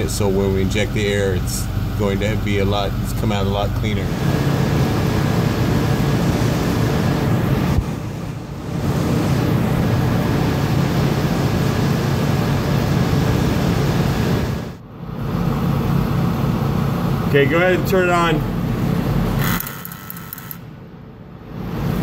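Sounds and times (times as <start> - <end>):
mechanical running hum: 0.0 - 22.0.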